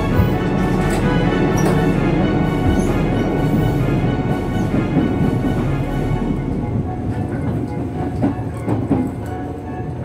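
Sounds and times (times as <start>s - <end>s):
train wheels rumbling on rails: 0.0s - 10.0s.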